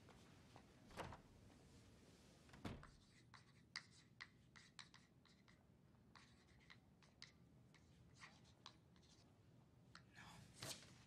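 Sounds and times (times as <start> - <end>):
chalk scratching on blackboard: 3.0 - 5.6, 6.2 - 7.2.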